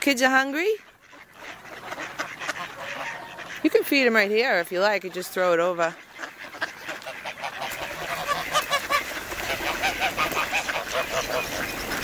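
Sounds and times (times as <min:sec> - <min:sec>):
ducks quacking: 0:00.0 - 0:12.0.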